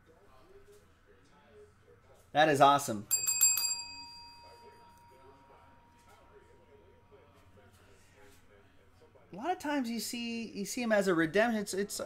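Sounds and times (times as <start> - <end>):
small metal bell struck: 3.1 - 6.5.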